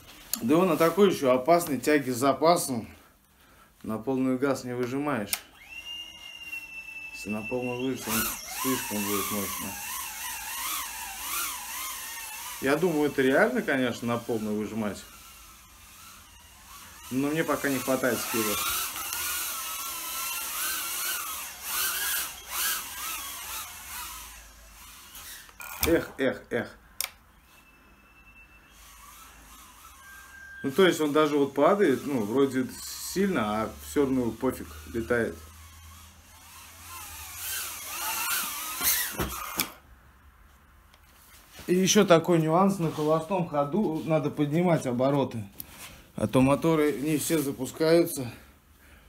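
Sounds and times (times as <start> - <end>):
drone motors whining: 5.4 - 26.2, 27.0 - 39.8.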